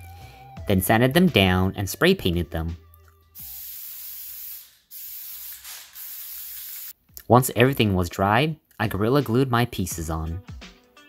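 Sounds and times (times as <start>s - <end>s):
spray can hissing: 3.4s - 7.0s.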